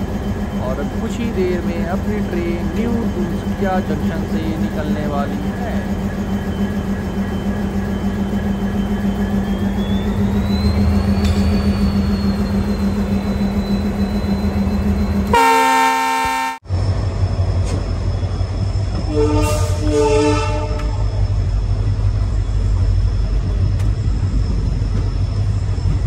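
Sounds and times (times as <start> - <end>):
diesel locomotive idling: 0.0 - 26.0
rumble of moving train: 0.0 - 26.0
locomotive horn blast: 15.2 - 16.7, 19.1 - 21.0.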